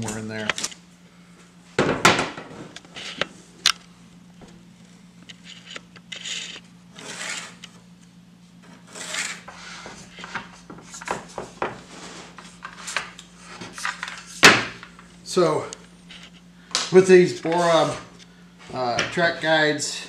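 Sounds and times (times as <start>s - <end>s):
track guide sliding on wood: 8.7s - 10.4s.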